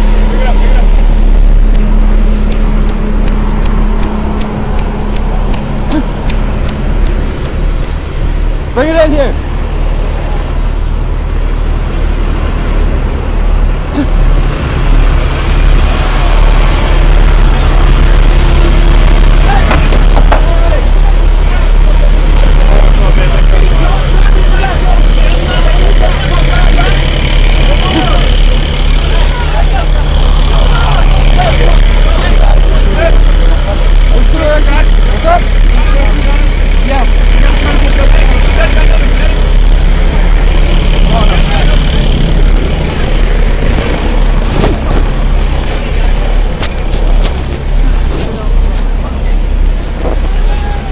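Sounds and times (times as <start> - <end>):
heavy vehicle engine droning: 0.0 - 50.9
indistinct voices: 0.0 - 50.9.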